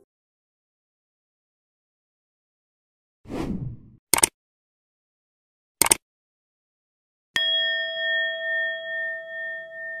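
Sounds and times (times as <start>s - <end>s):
bell chime ringing: 7.4s - 10.0s.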